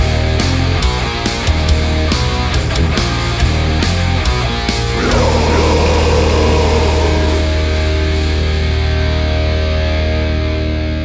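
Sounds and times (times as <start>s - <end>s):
distorted guitar and bass chord: 4.9s - 10.5s.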